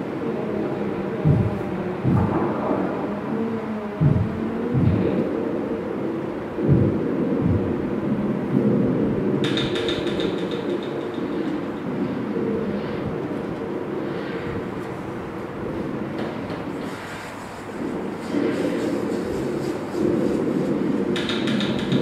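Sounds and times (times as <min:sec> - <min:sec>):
low rumbling electronic drone: 0:00.0 - 0:09.2
deep thumps: 0:01.2 - 0:02.9, 0:04.0 - 0:05.2, 0:06.6 - 0:07.7.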